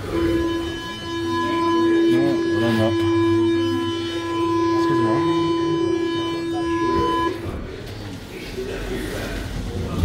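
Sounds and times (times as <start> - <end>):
electric train tone: 0.0 - 7.7.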